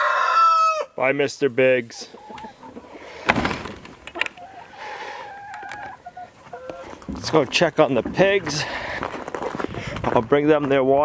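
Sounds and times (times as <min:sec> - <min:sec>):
hens clucking: 0:00.0 - 0:10.8.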